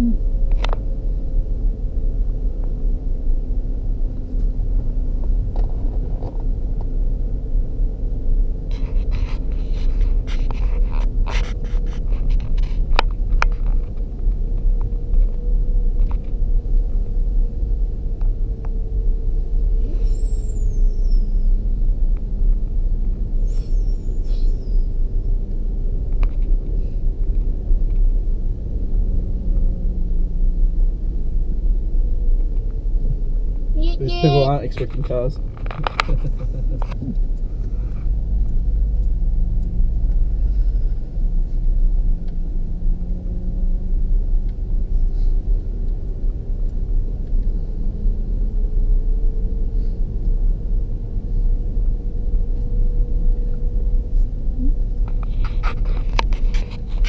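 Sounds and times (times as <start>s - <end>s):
engine and tyres rumbling: 0.0s - 57.0s.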